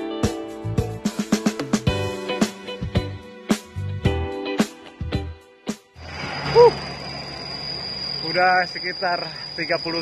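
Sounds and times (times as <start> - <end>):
road noise low rumble: 6.0 - 10.0.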